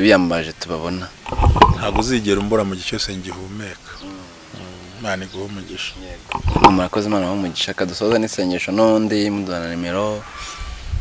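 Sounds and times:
man speaking softly: 1.8 - 10.3.

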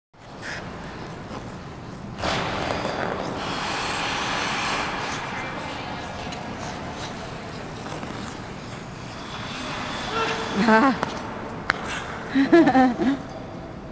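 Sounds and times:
skate blades scraping on ice: 2.2 - 12.2.

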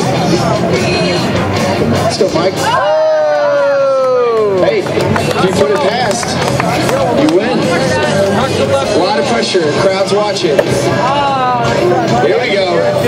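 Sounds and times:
spectators chattering and shouting: 0.0 - 13.0
crowd ohhh exclamation: 2.6 - 4.6.

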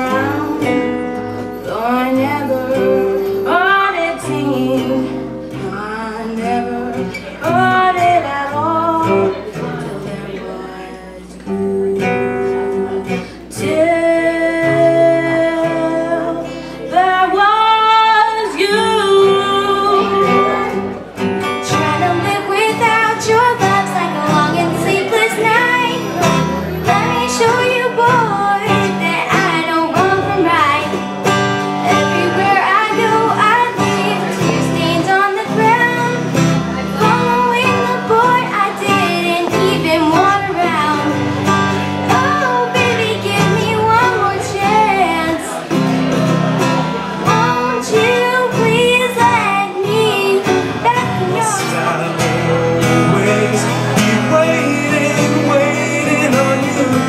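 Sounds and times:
girl singing: 0.0 - 57.0
strummed acoustic guitar: 0.0 - 57.0.

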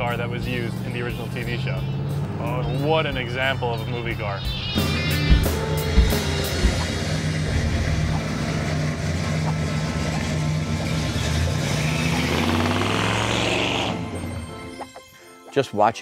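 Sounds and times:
music: 0.0 - 8.3, 13.4 - 16.0
tyre and exhaust rush: 0.5 - 14.8.

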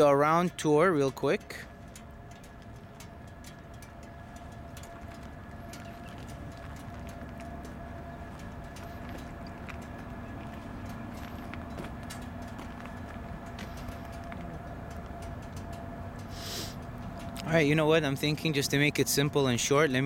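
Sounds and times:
motorcycle engine idling: 0.0 - 20.0.

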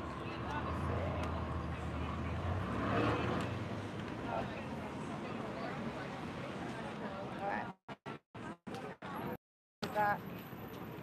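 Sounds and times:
faint voices of passers-by: 0.0 - 7.8
traffic rumble: 0.0 - 7.8.

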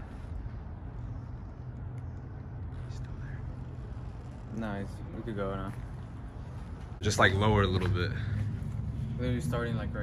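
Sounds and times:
low urban rumble: 0.0 - 10.0.

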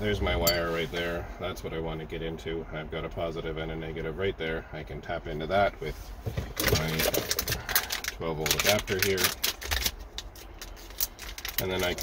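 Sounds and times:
plastic parts clicking and rattling: 6.6 - 12.0.

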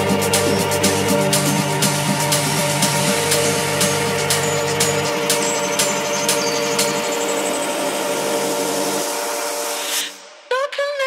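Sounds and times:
bass: 0.0 - 9.6
held synth chord: 0.0 - 10.4
faint rising sweep: 0.0 - 10.5
sharp percussion hits: 0.0 - 10.5.

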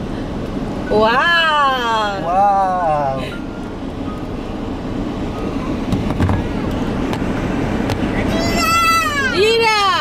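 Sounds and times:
car running heard from cabin: 0.0 - 10.0.

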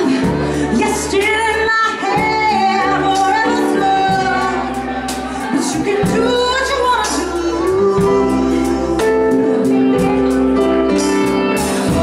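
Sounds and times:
live band playing: 0.0 - 12.0
woman singing: 0.0 - 12.0.

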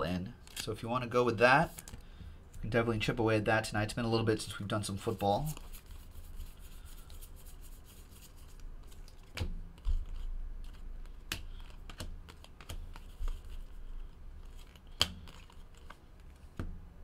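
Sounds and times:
cards clicking and snapping: 8.8 - 13.7, 14.4 - 16.7.

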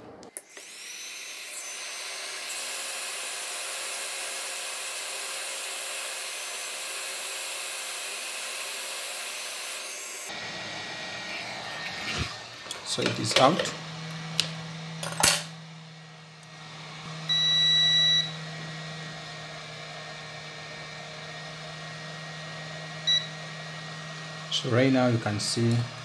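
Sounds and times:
hot-air gun hissing with whine: 0.4 - 14.6, 19.4 - 26.0.

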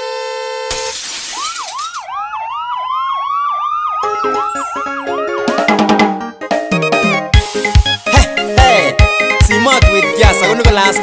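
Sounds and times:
electronic siren yelp: 0.8 - 7.2
rising siren wail: 1.3 - 7.3
musical notes: 4.0 - 11.0.

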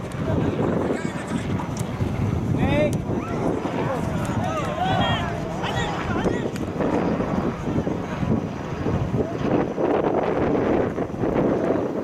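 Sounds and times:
wind buffeting microphone: 0.0 - 12.0
distant voices shouting: 2.9 - 7.1.

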